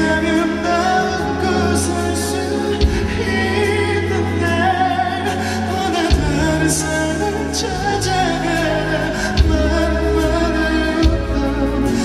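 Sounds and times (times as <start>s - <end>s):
keyboard and band accompaniment: 0.0s - 12.0s.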